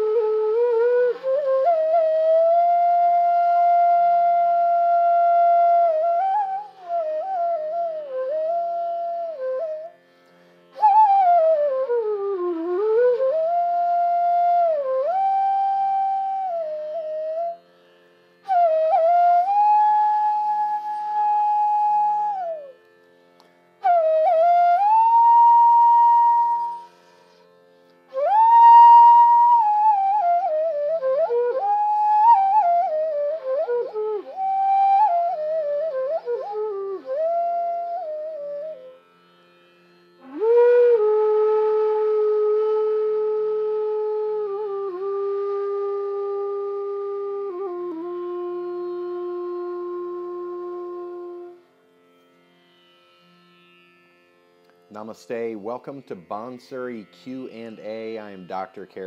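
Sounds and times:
flute long steady note: 0.0s - 59.0s
bamboo flute note sliding: 18.5s - 23.0s, 23.8s - 39.0s.

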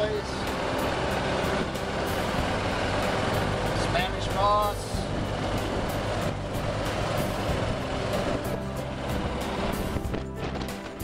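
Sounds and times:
music playing: 0.0s - 11.0s
vehicle ride noise: 0.0s - 11.0s.

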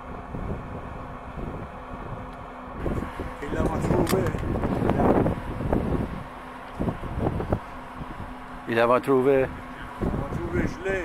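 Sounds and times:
wind buffeting microphone: 0.0s - 8.6s, 9.3s - 11.0s.

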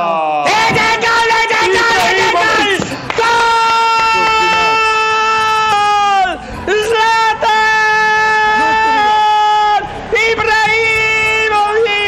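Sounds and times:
man shouting goal cry: 0.0s - 12.0s.

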